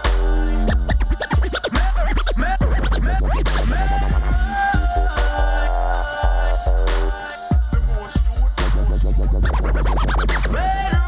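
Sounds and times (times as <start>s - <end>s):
electronic beat with deep bass: 0.0s - 11.0s
vinyl record scratching: 0.0s - 11.0s.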